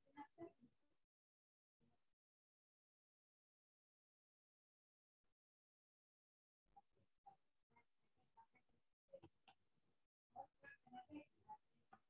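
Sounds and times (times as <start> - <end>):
faint muffled voice: 10.4 - 12.0.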